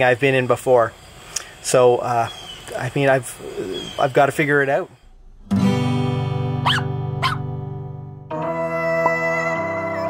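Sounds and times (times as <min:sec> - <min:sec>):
ringing guitar chord: 0:05.2 - 0:10.0
dog barks: 0:06.6 - 0:07.5.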